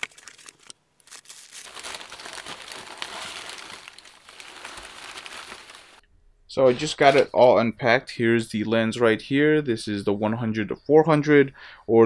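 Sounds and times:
bubble wrap and paper crinkling: 0.0s - 6.0s, 6.7s - 7.3s.

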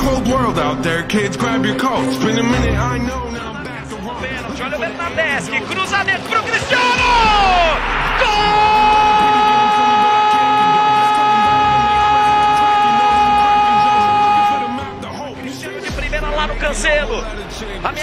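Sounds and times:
music: 0.0s - 18.0s
commentator shouting goal: 4.8s - 15.1s.

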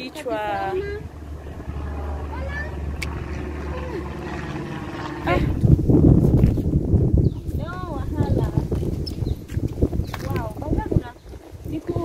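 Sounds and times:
low steady hum: 0.0s - 8.5s
footsteps on wooden boardwalk: 7.4s - 10.6s.

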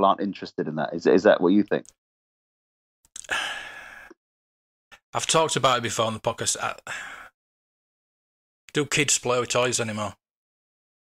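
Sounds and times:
man breathing in: 3.2s - 4.2s, 6.9s - 7.3s.

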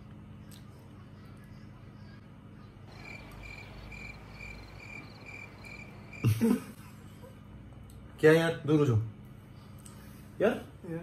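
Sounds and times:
cricket chirping: 2.9s - 6.6s.

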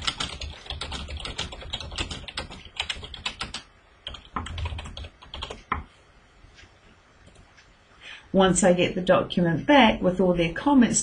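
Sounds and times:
typing on computer keyboard: 0.0s - 5.9s.

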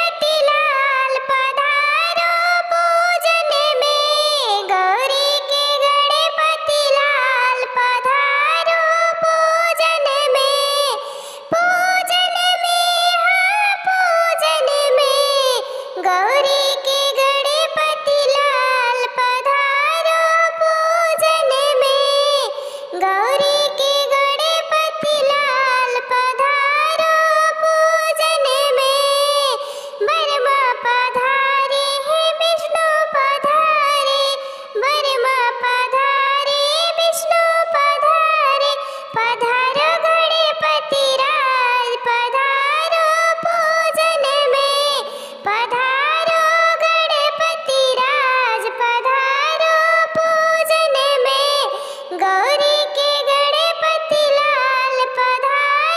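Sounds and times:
pitch-shifted voice singing: 0.0s - 55.9s.

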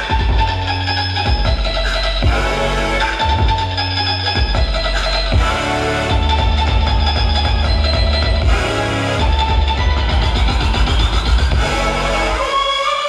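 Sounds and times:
rock music with heavy bass beat: 0.0s - 12.8s.

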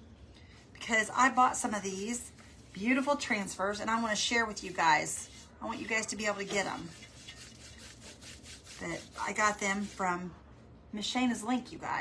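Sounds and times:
paintbrush brushing across tray: 1.8s - 10.3s.

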